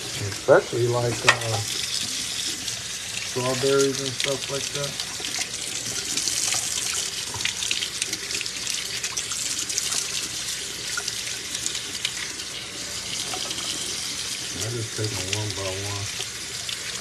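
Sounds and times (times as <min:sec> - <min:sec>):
greens rinsed in metal strainer: 0:00.0 - 0:01.8, 0:03.2 - 0:17.0
tap running into sink: 0:01.0 - 0:01.8.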